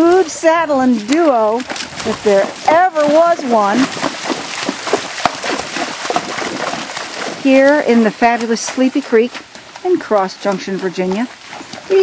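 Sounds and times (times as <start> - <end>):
hooves splashing in water: 0.0 - 12.0.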